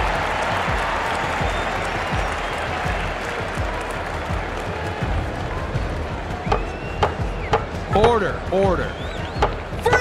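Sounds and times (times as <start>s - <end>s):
crowd applauding: 0.0s - 7.9s.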